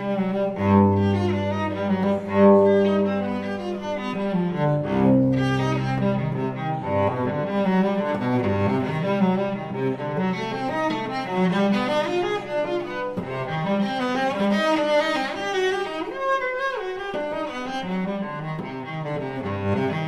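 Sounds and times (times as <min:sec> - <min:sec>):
cello arpeggios: 0:00.0 - 0:20.0.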